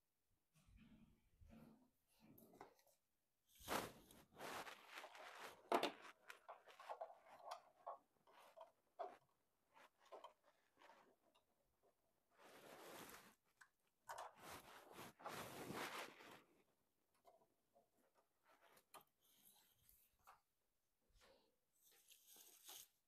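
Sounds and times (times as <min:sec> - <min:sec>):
handling rustling and knocks: 0:03.6 - 0:16.5.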